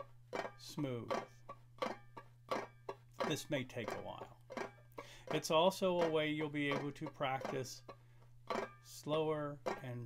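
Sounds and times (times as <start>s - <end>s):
banjo clawhammer strokes: 0.0s - 10.0s.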